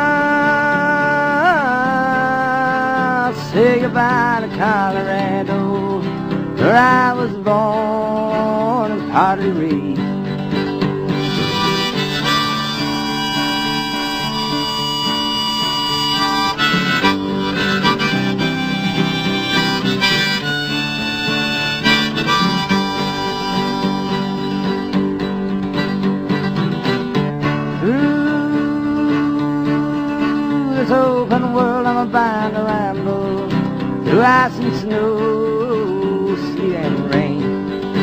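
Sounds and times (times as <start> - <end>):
strummed acoustic guitar: 0.0 - 38.0
harmonica solo: 11.1 - 31.8.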